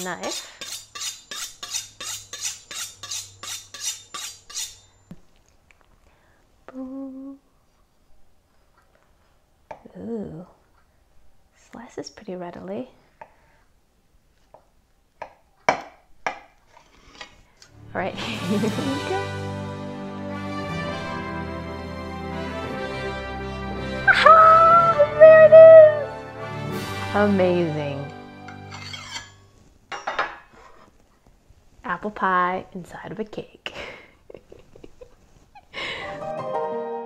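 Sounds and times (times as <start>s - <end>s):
knife scraping a plate: 0.0s - 4.9s, 28.5s - 29.5s.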